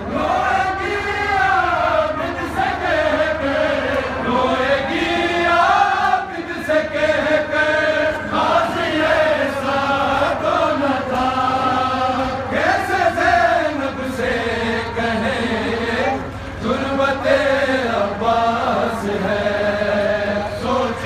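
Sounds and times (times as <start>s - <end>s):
men chanting a lament: 0.0s - 21.0s.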